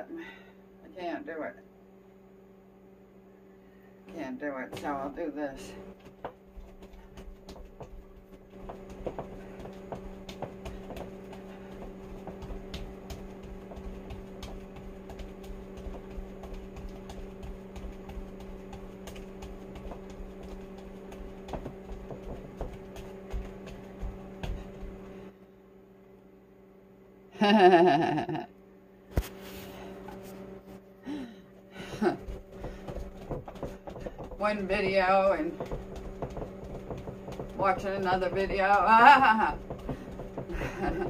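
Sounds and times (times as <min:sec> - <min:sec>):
microwave oven humming: 0:00.0 - 0:41.0.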